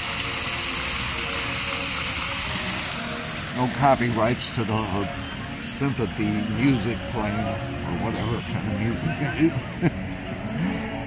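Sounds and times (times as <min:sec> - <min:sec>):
water splashing over rocks: 0:00.0 - 0:09.8.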